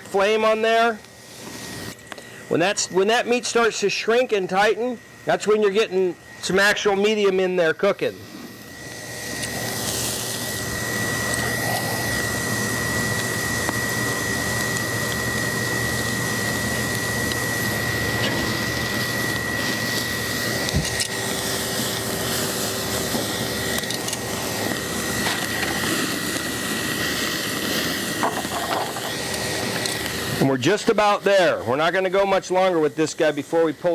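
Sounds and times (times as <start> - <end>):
steak sizzling over charcoal: 1.0 - 2.0, 8.3 - 33.9.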